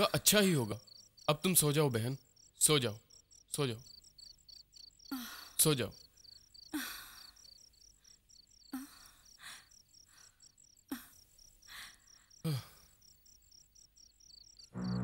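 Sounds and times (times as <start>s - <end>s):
crickets chirping: 0.0s - 15.0s
soft breathy sounds: 6.7s - 13.2s.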